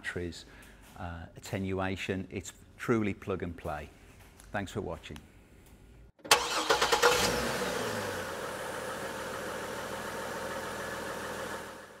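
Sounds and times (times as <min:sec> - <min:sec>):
engine start sound effect: 0:06.2 - 0:08.0.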